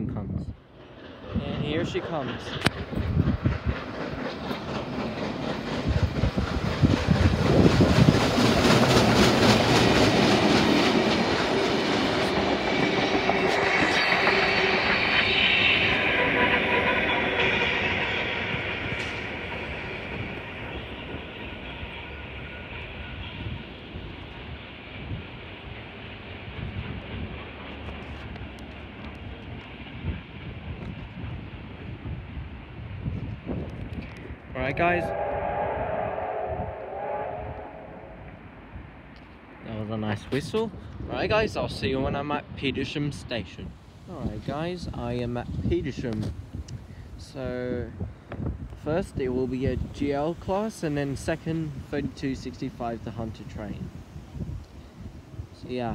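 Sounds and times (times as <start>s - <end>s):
train wheels clattering over rail joints: 0.7s - 31.9s
steam whistle: 13.3s - 23.5s, 34.6s - 38.4s.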